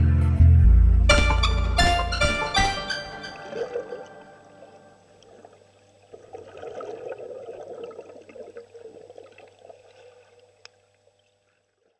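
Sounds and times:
water gurgling and bubbling: 3.3 - 10.6.

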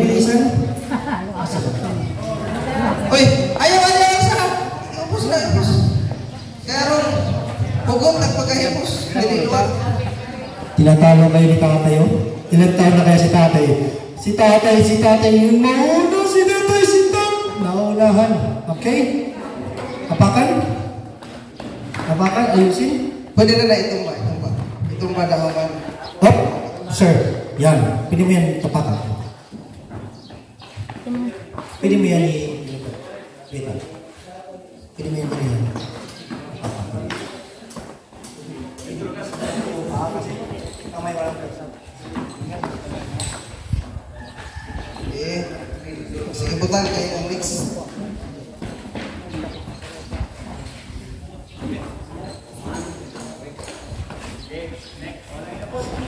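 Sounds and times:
chatter of people: 0.0 - 56.0.

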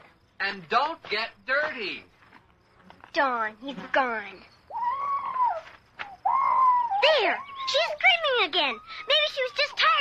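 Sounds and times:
muffled woman screaming: 4.7 - 8.0.

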